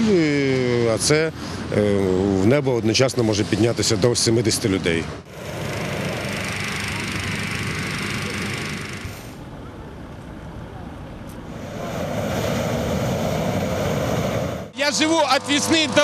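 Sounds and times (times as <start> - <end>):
propane burner roaring: 4.8 - 16.0.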